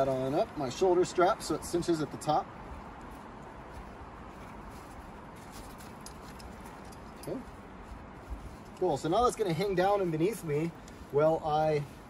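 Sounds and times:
climbing gear rustling: 4.3s - 11.2s.

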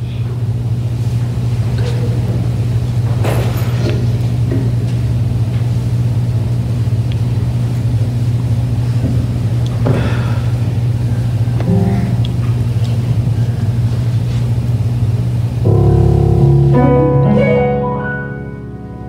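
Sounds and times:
low keyboard note droning: 4.1s - 19.0s
keyboard chords: 11.6s - 13.4s, 15.6s - 19.0s
soft higher keyboard notes: 11.6s - 13.5s, 15.6s - 19.0s.

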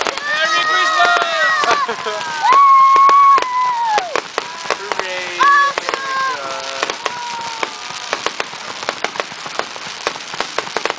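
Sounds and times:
fireworks crackling: 0.0s - 10.9s
steady hiss: 0.0s - 10.9s.

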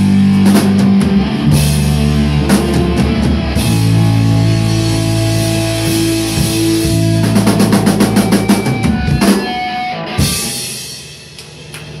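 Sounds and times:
fast drum roll: 0.0s - 11.1s
rock band playing: 0.0s - 12.0s.

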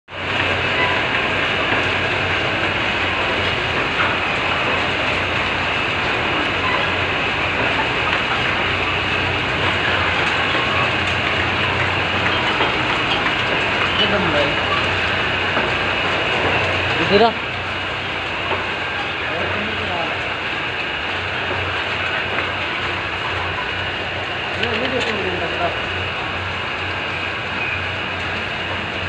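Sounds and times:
conveyor mechanical rattle: 0.1s - 29.0s.

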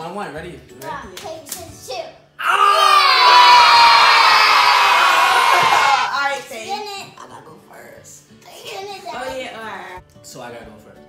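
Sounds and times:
loud shriek from several voices: 2.4s - 6.1s
excited voices: 2.4s - 6.4s.

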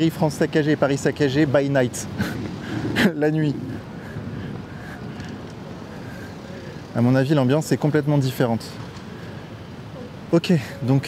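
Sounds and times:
hum of street traffic: 0.0s - 11.0s.

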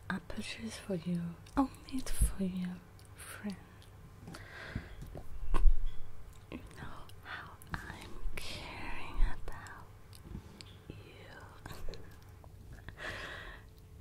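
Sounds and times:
soft whispering: 0.1s - 3.9s, 6.5s - 12.3s.

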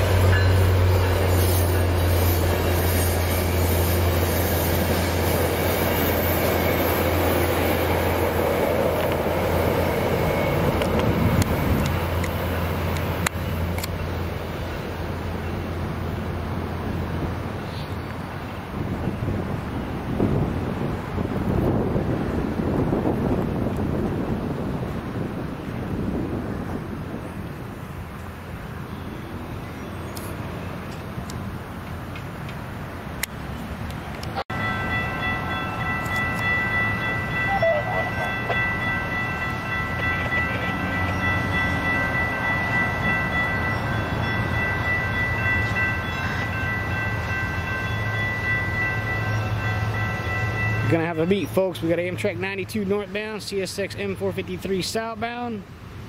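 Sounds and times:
grade-crossing bells ringing: 0.0s - 14.3s, 34.5s - 55.5s
train rumbling: 0.0s - 56.0s
wind on microphone: 18.7s - 27.8s.

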